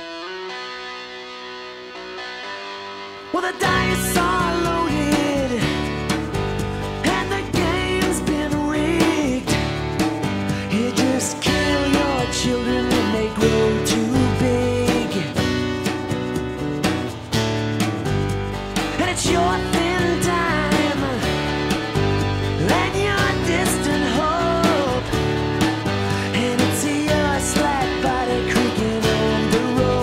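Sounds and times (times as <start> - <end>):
rock band playing: 0.0 - 30.0
wavering vocal line: 22.5 - 25.3, 26.0 - 30.0.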